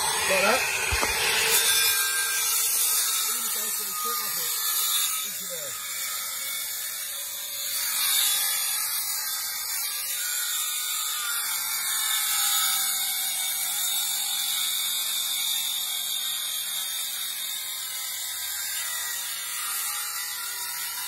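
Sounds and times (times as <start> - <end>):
circular saw cutting wood: 0.0 - 21.0.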